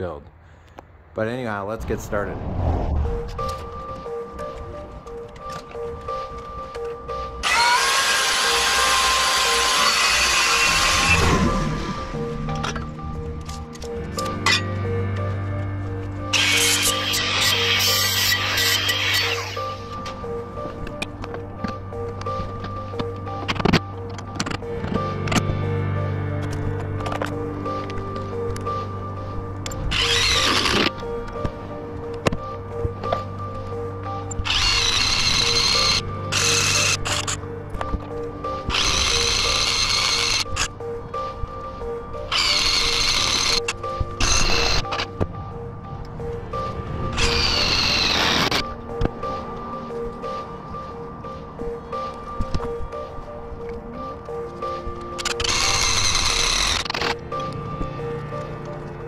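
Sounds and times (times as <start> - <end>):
background music: 0.0 - 59.0
cordless drill motor whine: 6.8 - 13.0, 16.3 - 20.0, 29.7 - 31.4, 34.2 - 37.4, 38.6 - 40.8, 42.3 - 45.2, 47.1 - 49.1, 55.2 - 57.5.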